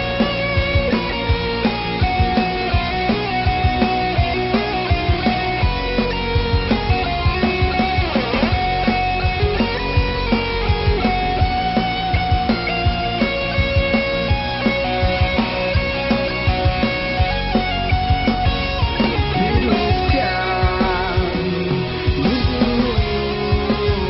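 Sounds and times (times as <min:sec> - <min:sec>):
distorted electric guitars: 0:00.0 - 0:24.0
steady drum beat: 0:00.0 - 0:24.0.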